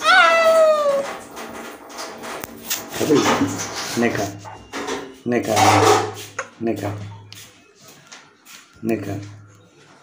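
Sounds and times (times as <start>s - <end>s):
baby whining cry: 0.0s - 1.0s.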